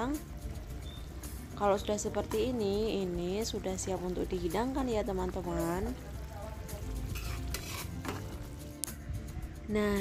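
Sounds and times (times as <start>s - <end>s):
curry bubbling: 0.0s - 8.8s
metal spatula scraping a wok: 7.0s - 8.4s.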